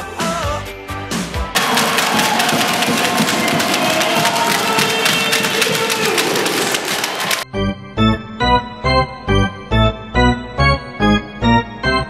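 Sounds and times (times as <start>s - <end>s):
crowd cheering and clapping: 1.6s - 7.5s
music track: 1.6s - 8.6s.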